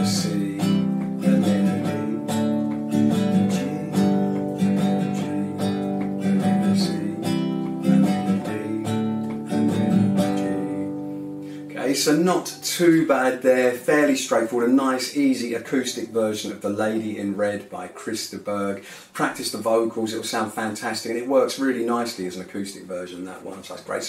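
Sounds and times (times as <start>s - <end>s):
acoustic guitar strumming chords: 0.0s - 17.6s.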